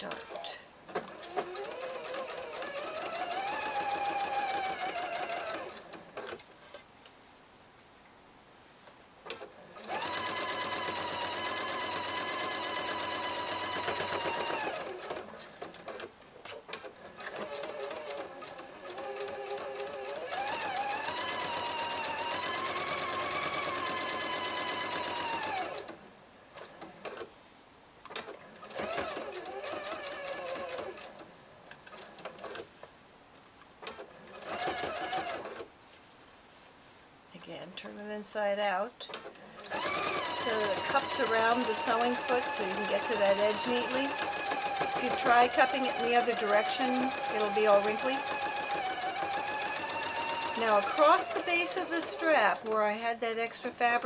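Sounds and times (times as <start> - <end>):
electric sewing machine: 0.0 - 6.4, 9.3 - 16.1, 16.7 - 26.0, 28.1 - 31.2, 33.9 - 35.7, 39.1 - 52.9.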